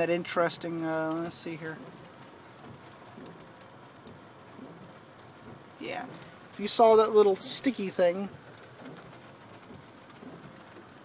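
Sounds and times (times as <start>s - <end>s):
faint steady hiss: 0.0s - 11.0s
light ticks on car roof: 1.0s - 6.9s, 8.3s - 11.0s.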